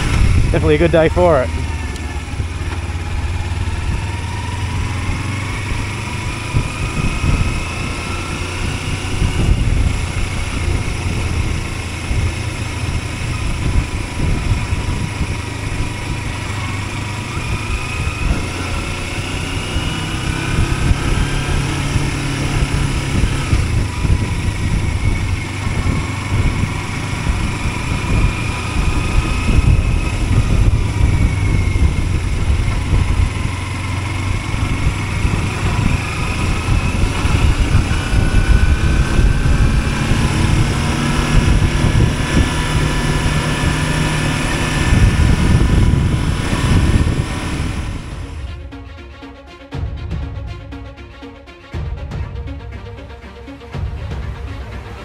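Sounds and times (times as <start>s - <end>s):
motorcycle engine running: 0.0s - 48.8s
wind noise rumble: 0.0s - 48.8s.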